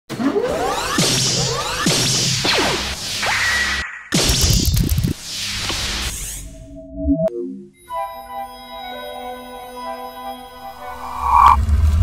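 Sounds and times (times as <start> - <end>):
short high tone: 10.4 - 11.6
low steady drone: 10.6 - 12.0
synthesized whooshes: 10.6 - 12.0.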